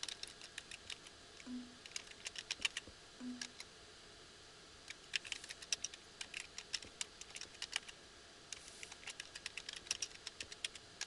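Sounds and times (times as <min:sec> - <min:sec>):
computer keyboard typing: 0:00.0 - 0:03.7, 0:04.9 - 0:07.9, 0:08.8 - 0:10.9.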